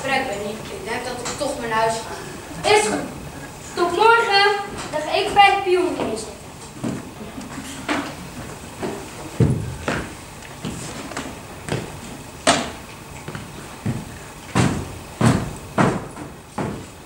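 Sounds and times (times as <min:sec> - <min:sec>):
knocks on wooden stage floor: 0:09.4 - 0:10.8, 0:11.7 - 0:16.9.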